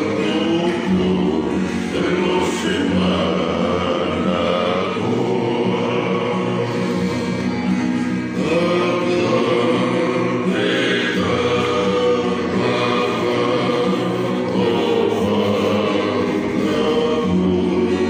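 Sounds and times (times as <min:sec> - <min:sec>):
men singing in harmony: 0:00.0 - 0:18.0
strummed acoustic guitars: 0:00.0 - 0:18.0.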